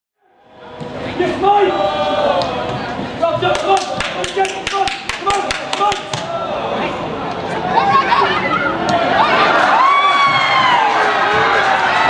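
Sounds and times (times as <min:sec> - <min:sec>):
people shouting: 0:00.7 - 0:07.0, 0:07.7 - 0:12.0.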